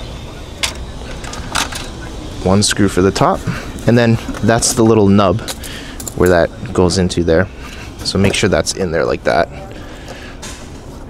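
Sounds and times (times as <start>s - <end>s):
steady low rumble: 0.0s - 11.0s
metal parts and tools clicking: 0.6s - 2.0s, 5.4s - 6.4s.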